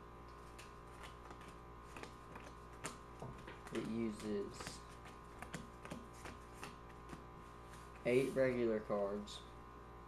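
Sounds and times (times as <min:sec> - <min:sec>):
faint steady hum: 0:00.0 - 0:10.0
cards dealt onto wooden table: 0:00.4 - 0:08.6.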